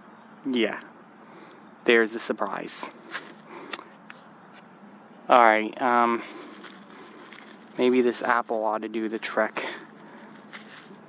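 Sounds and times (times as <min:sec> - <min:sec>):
faint rustle: 0:02.8 - 0:11.0.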